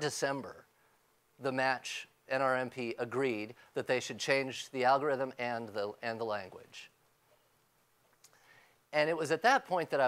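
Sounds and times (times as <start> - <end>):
man speaking: 0.0 - 0.7, 1.4 - 7.0, 8.9 - 10.0.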